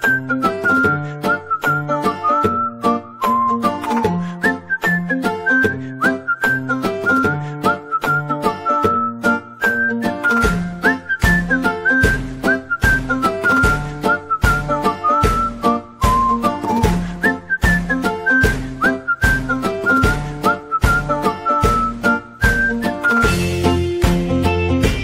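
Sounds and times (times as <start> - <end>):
whistled melody: 0.0 - 25.0
rhythmic accompaniment with bass: 6.6 - 25.0.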